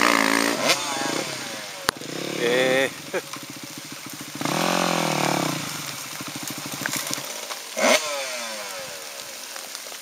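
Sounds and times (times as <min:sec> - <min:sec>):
dirt bike engine at low revs: 0:00.0 - 0:09.6.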